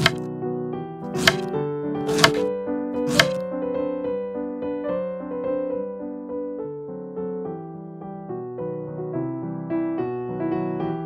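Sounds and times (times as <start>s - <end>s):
knife chopping on cutting board: 0.0s - 0.2s, 1.1s - 3.4s
background piano music: 0.0s - 11.0s.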